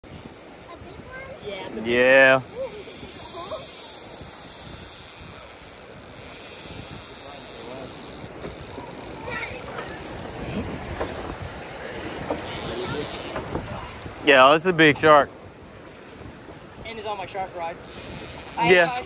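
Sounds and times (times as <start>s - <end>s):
surf: 0.0s - 19.0s
wind: 0.0s - 19.0s
faint voices: 0.4s - 11.1s, 12.3s - 14.1s.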